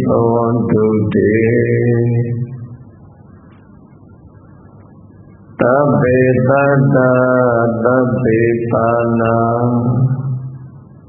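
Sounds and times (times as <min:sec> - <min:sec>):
man chanting: 0:00.0 - 0:02.7, 0:05.6 - 0:10.6.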